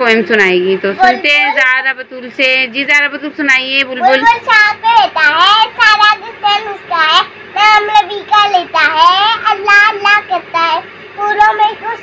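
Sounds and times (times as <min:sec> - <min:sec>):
girl singing: 0:04.0 - 0:12.0.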